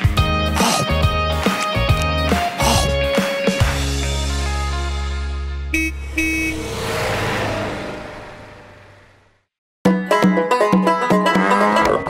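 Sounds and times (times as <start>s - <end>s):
cartoon car horn honk: 5.7s - 6.8s
car rushing past: 5.8s - 9.5s.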